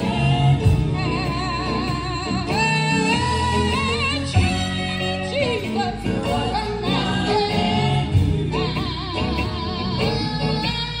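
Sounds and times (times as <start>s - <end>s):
band with keyboard drums and guitar: 0.0s - 11.0s
women's vocal group singing: 0.0s - 11.0s.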